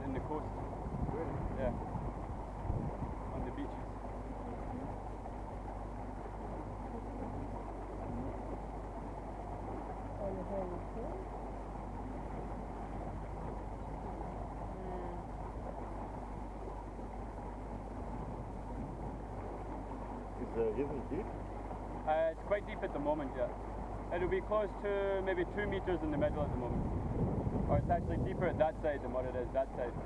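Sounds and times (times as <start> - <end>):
boat motor droning: 0.0 - 30.0
water rushing along hull: 0.0 - 30.0.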